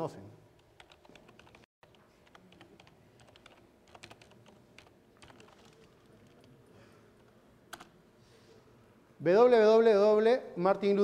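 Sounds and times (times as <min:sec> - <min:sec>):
typing on computer keyboard: 0:00.8 - 0:06.5, 0:07.7 - 0:07.9.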